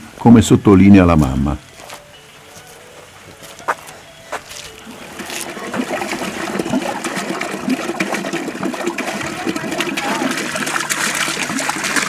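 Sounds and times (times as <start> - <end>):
water splashing into plastic bucket: 5.1 - 12.0.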